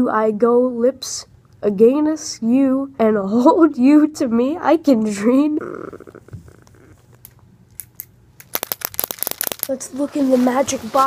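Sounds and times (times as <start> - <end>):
plastic crinkling: 8.4 - 11.0.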